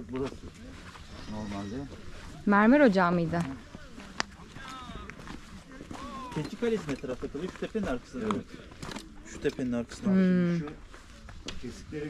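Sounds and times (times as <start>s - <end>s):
footsteps on rocky trail: 0.0s - 11.9s.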